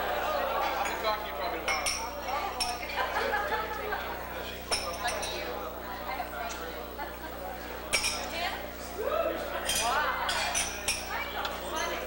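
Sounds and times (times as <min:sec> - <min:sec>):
party chatter of many voices: 0:00.0 - 0:12.0
glasses and dishes clinking: 0:01.6 - 0:03.0, 0:04.7 - 0:05.4, 0:07.9 - 0:08.3, 0:09.6 - 0:11.1.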